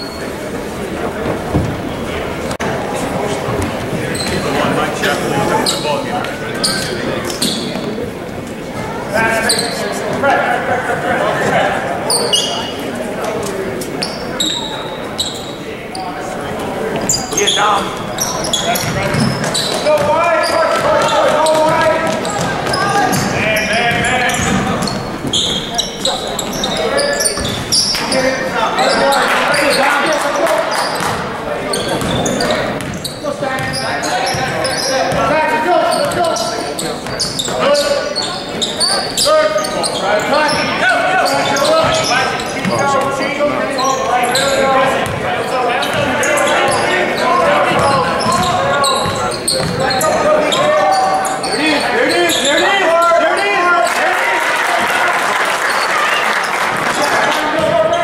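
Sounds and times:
crowd and player voices echoing: 0:00.0 - 0:58.0.

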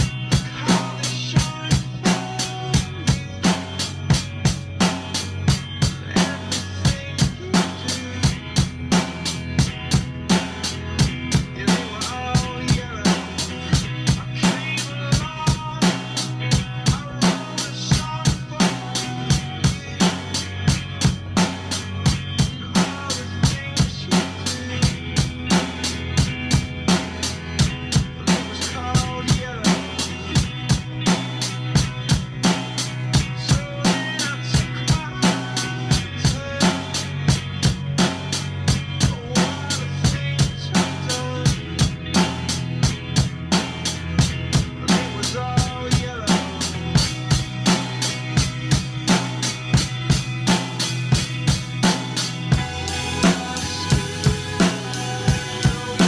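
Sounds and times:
recorded song with bass line: 0:00.0 - 0:56.0
rock drum beat: 0:00.0 - 0:56.0.

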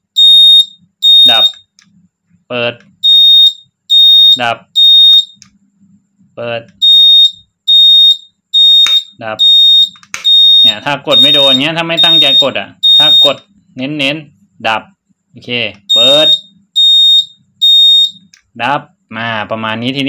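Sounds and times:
turn signal beeping: 0:09.8 - 0:13.4.

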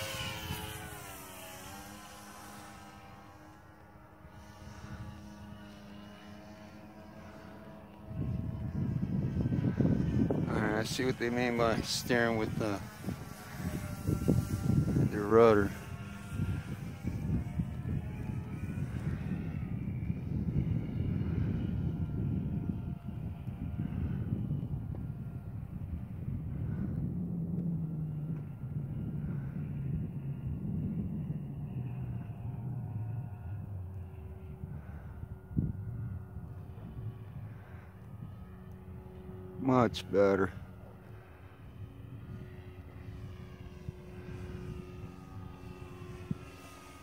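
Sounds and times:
model plane motor whine: 0:00.0 - 0:47.0.

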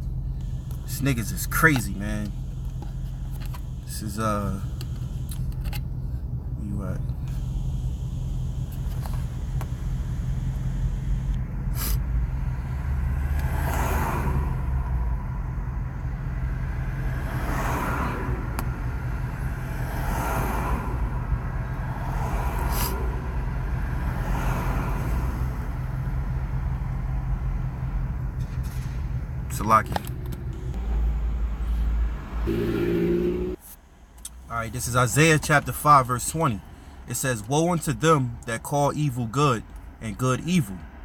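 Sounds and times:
low vehicle rumble: 0:00.0 - 0:37.1
vehicle passing: 0:11.7 - 0:33.6.

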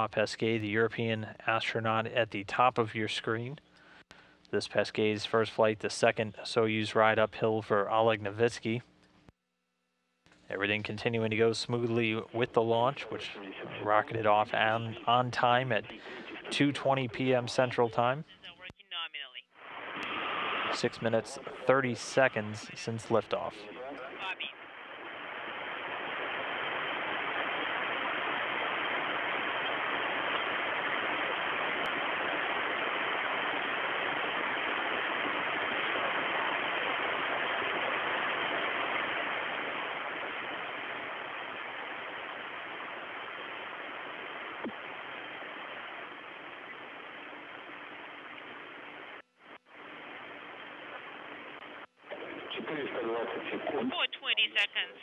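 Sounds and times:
radio static hiss: 0:00.0 - 0:09.0, 0:10.3 - 0:55.0.

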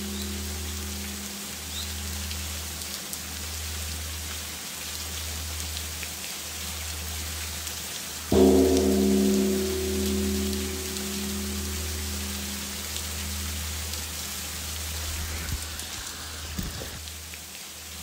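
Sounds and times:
low pulsing drone: 0:00.0 - 0:04.3, 0:08.3 - 0:17.0
steady rain falling: 0:00.0 - 0:18.0
struck bell-like tone: 0:08.3 - 0:15.5.

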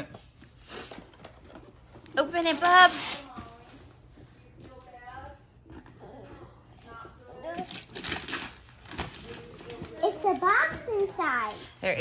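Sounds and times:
wrapping paper crinkling and tearing: 0:02.0 - 0:03.6, 0:07.6 - 0:10.5.

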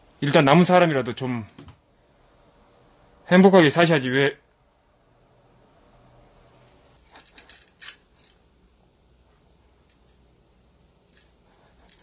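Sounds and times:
small clicks and scrapes: 0:07.0 - 0:08.4, 0:09.8 - 0:10.2, 0:11.1 - 0:12.0.

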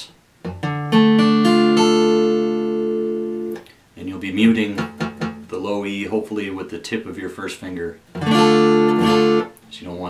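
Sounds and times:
acoustic guitar chord strummed: 0:00.4 - 0:03.6, 0:04.5 - 0:05.5, 0:08.2 - 0:09.6.

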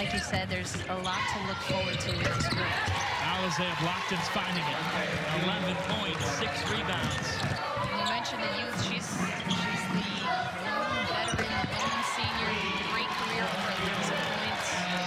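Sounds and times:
arena crowd noise: 0:00.0 - 0:15.0
voices: 0:00.0 - 0:15.0
basketball bouncing on hardwood: 0:06.8 - 0:12.5.

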